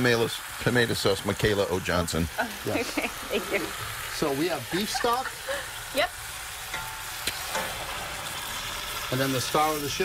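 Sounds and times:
hiss and sizzle: 0.0 - 10.0
liquid pouring into hot pot: 0.0 - 10.0.

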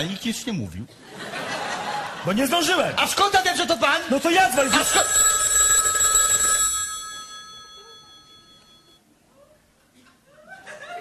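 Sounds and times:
telephone bell ringing: 4.5 - 9.0.

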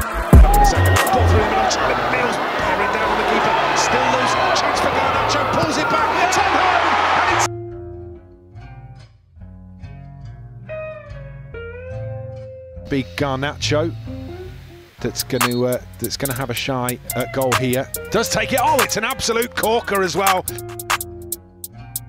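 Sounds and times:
background music with bass line: 0.0 - 1.8, 7.5 - 22.0
crowd cheering and clapping: 0.0 - 7.5.

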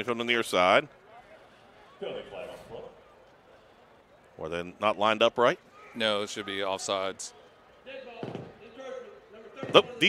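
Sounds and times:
faint stadium ambience: 0.0 - 10.0.

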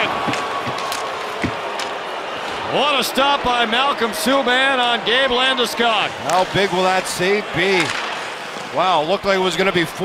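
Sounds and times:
sticks and puck knocking on ice: 0.0 - 1.9
arena crowd noise: 0.0 - 10.0.

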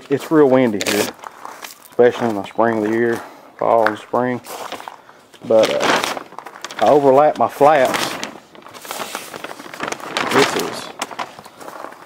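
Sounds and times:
plastic sheeting crinkling: 0.0 - 12.0.

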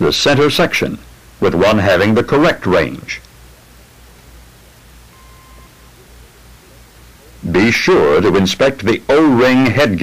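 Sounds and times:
recording hum and hiss: 0.0 - 10.0
faint beep: 5.1 - 5.9.

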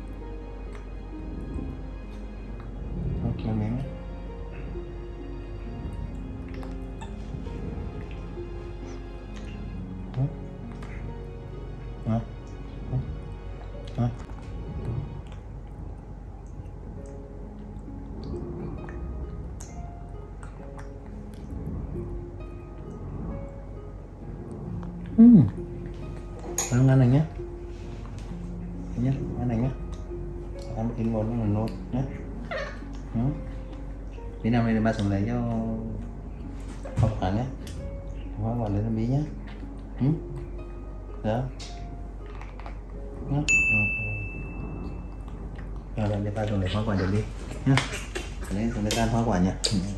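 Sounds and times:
background music: 0.0 - 49.9
metal spoon clink: 26.6 - 26.8.

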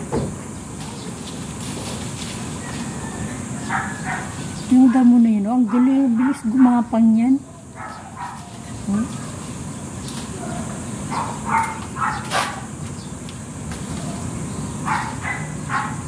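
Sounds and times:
dog barking: 3.6 - 4.4, 5.6 - 9.4, 10.4 - 12.7, 14.0 - 16.0.

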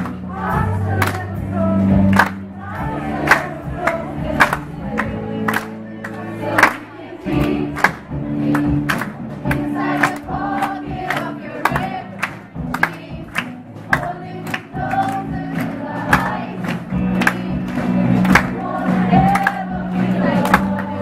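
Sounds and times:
electric guitars and bass: 0.0 - 21.0
group singing in chorus: 0.0 - 21.0.

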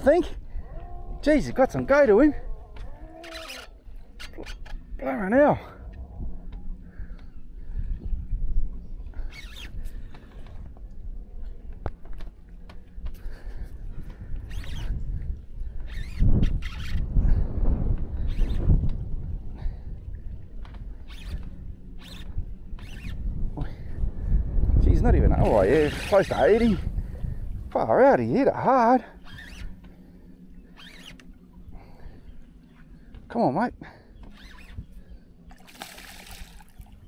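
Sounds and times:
wind rumbling on microphone: 0.0 - 37.0.

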